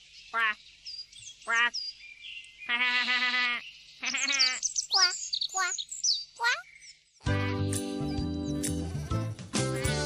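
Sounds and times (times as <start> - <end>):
cartoon animal quack-like call: 0.4 - 0.6, 1.5 - 1.7, 2.7 - 5.8, 7.2 - 7.7.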